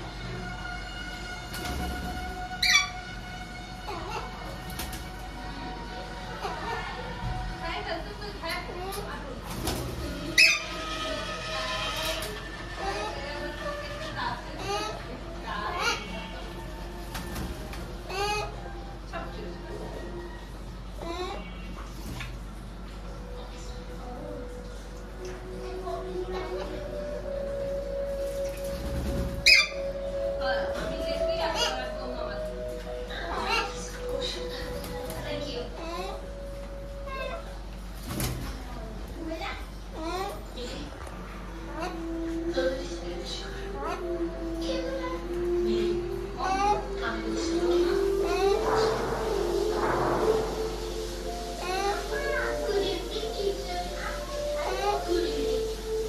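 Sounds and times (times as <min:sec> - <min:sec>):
background music: 0:00.0 - 0:21.2, 0:22.6 - 0:38.4, 0:41.1 - 0:56.0
parakeet squawk: 0:02.6 - 0:03.1, 0:10.3 - 0:13.2, 0:29.4 - 0:30.0
steady background tone: 0:38.6 - 0:56.0.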